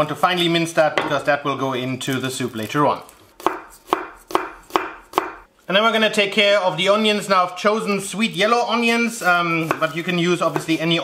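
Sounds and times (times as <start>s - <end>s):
knife striking wooden cutting board: 1.0s - 1.2s, 9.6s - 9.9s.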